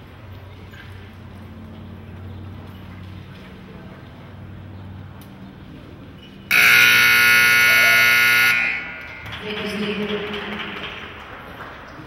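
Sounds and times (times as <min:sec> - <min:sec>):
arena buzzer blast: 0:06.5 - 0:09.3.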